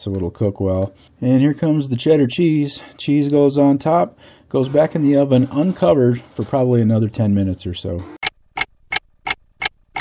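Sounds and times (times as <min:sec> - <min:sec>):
clock ticking: 0:08.2 - 0:10.0.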